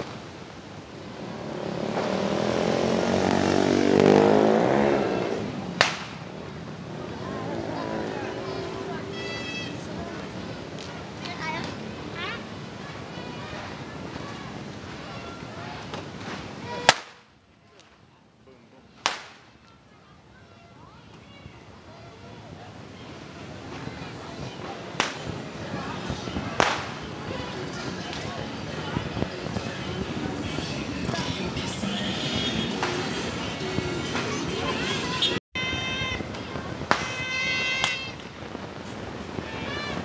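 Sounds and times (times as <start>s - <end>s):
faint street noise: 0.0s - 40.0s
voices: 0.0s - 40.0s
vehicle passing by: 1.0s - 10.7s
firecracker bang: 5.8s - 6.3s, 16.2s - 17.3s, 19.0s - 19.5s, 26.4s - 27.0s, 36.6s - 38.6s.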